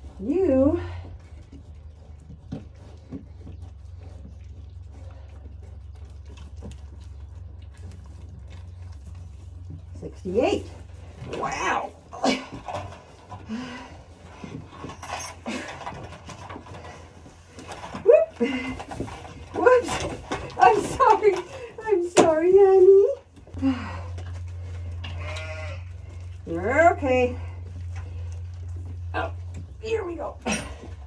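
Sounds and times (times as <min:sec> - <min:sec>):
knocks and rustling of handled animals: 0:00.0 - 0:31.0.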